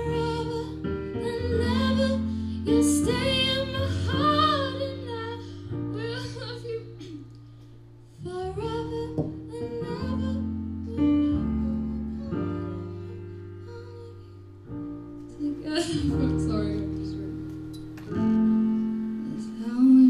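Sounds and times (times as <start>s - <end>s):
woman singing: 0.0s - 7.3s, 8.1s - 14.4s, 15.3s - 17.4s, 19.2s - 20.0s.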